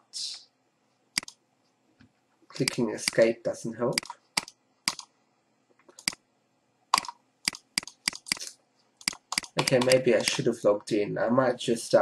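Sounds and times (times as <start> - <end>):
computer mouse clicks: 1.2 - 1.4, 2.6 - 3.2, 3.9 - 5.1, 5.7 - 6.2, 6.9 - 10.4.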